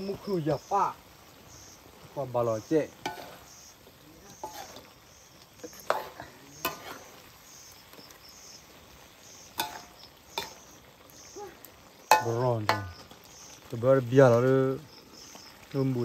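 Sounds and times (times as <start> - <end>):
faint frying sizzle: 0.0 - 16.0
ladle striking pan: 3.0 - 3.5, 5.7 - 7.2, 9.6 - 10.7, 12.1 - 13.1
metal ladle scraping in wok: 3.0 - 3.7, 4.3 - 5.0, 5.7 - 7.3, 9.5 - 10.7.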